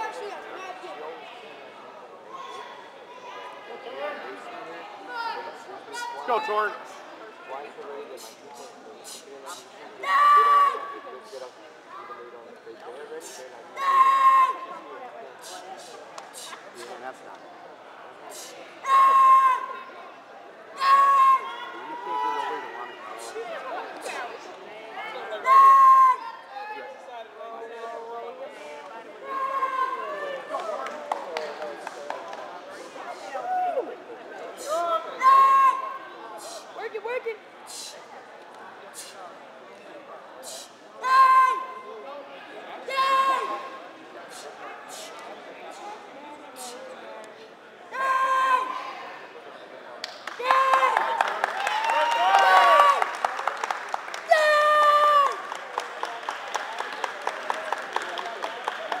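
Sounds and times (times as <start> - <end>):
other voices: 0.0 - 59.0
spectators chattering: 0.0 - 59.0
boy shouting kiai: 10.0 - 10.9, 13.8 - 14.7, 18.8 - 19.8, 20.8 - 22.5, 25.4 - 26.7, 34.7 - 36.0, 41.0 - 41.8, 42.9 - 43.7, 47.9 - 48.9.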